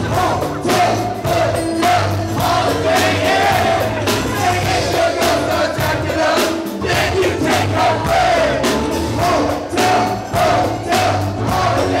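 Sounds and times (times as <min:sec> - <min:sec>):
bass line: 0:00.0 - 0:12.0
drum beat: 0:00.0 - 0:12.0
live band music: 0:00.0 - 0:12.0
people singing: 0:00.0 - 0:12.0.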